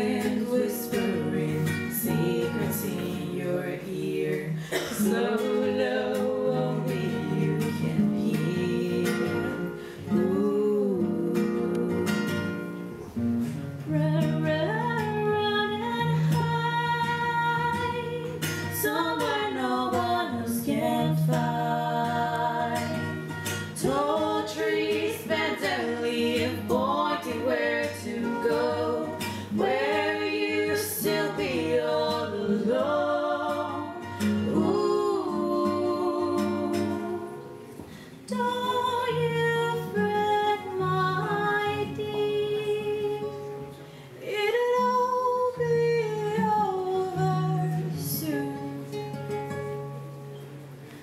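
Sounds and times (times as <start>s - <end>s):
women singing together: 0.0s - 12.9s, 13.9s - 48.8s
acoustic guitar: 0.0s - 51.0s.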